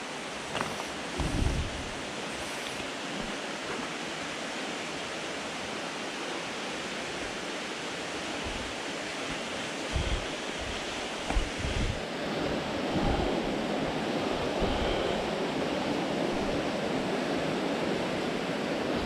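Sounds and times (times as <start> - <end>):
water rushing under rocks: 0.0 - 15.6
dull low bumps: 0.6 - 2.0.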